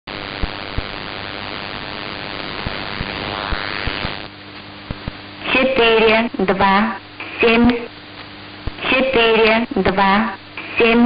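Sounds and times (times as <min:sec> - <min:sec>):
low crackles: 0:00.1 - 0:05.4
shortwave radio static: 0:00.1 - 0:11.0.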